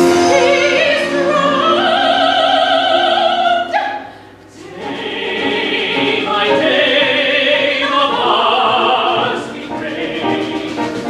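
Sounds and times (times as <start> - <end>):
chamber orchestra: 0.0 - 11.0
opera singing: 0.0 - 11.0.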